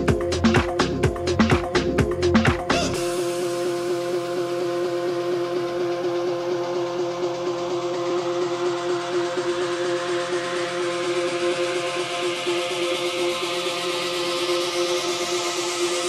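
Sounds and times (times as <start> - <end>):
held synth chord: 2.9 - 16.0.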